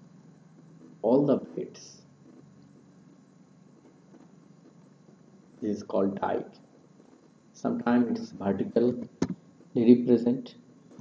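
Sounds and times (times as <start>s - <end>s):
high rapidly pulsing hiss: 0.0s - 11.0s.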